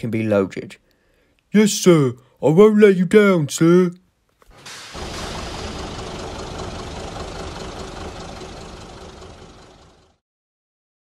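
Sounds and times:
diesel locomotive engine running: 0:04.5 - 0:10.2.

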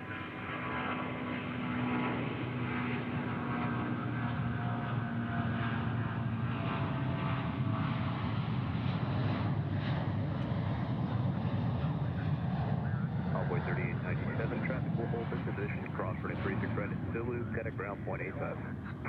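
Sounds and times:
jet engines rumbling: 0:00.0 - 0:19.0
faint steady whine: 0:12.1 - 0:19.0.

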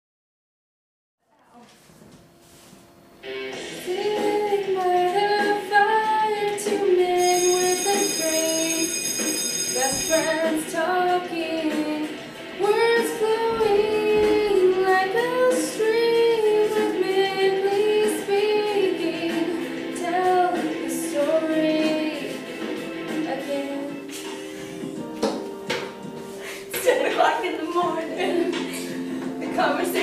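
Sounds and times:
young female voice singing: 0:03.8 - 0:08.6, 0:09.8 - 0:22.5, 0:27.2 - 0:30.0.

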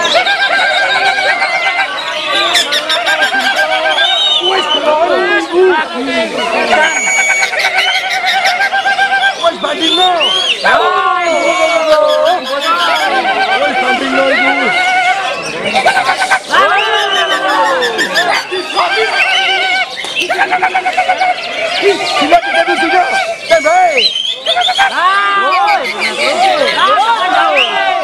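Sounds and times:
birds singing in chorus: 0:00.0 - 0:28.0.

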